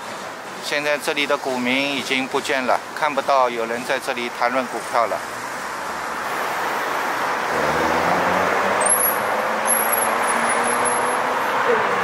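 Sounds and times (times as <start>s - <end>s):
road traffic: 0.0s - 12.0s
vehicle passing close: 6.1s - 12.0s.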